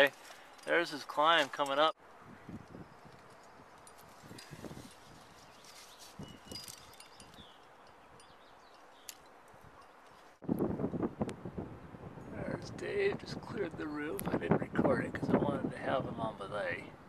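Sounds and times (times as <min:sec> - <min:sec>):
carabiners clinking: 0:00.0 - 0:01.9, 0:02.6 - 0:10.4.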